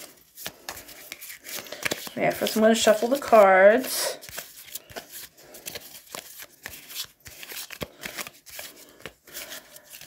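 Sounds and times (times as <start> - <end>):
playing cards being shuffled: 0.0 - 10.0.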